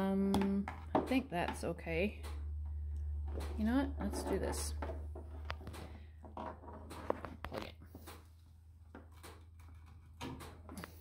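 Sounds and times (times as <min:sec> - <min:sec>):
steady low hum: 0:00.0 - 0:09.7.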